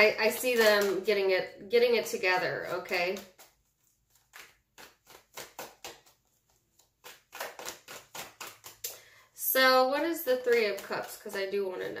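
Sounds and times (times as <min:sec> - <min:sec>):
cards being shuffled: 0:00.0 - 0:01.1, 0:02.1 - 0:09.1.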